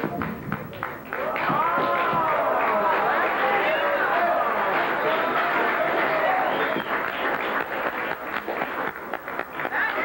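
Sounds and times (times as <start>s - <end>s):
audience applauding: 0.1s - 10.0s.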